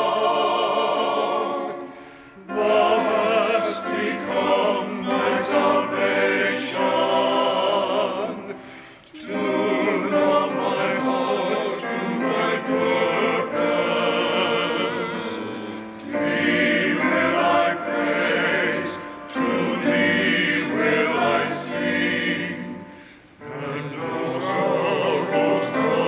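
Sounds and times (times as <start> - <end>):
men singing in harmony: 0.0 - 26.0
piano accompaniment: 0.0 - 26.0.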